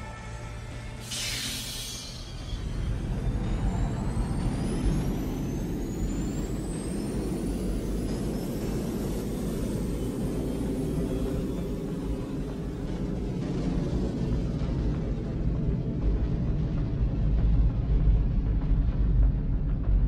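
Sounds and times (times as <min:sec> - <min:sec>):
high rising whistling tones: 0:00.0 - 0:13.5
deep steady rumble: 0:02.6 - 0:20.0.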